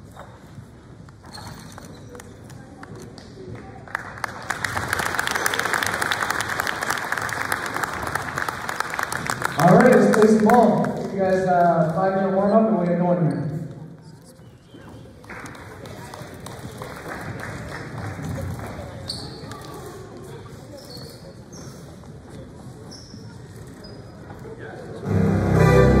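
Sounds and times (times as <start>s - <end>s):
short high squeaks: 1.2s - 2.2s
crowd chatter: 9.6s - 26.0s.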